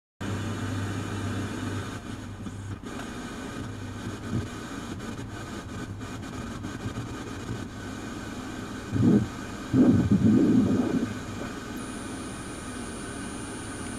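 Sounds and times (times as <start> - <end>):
steady low hum: 0.2 - 13.9.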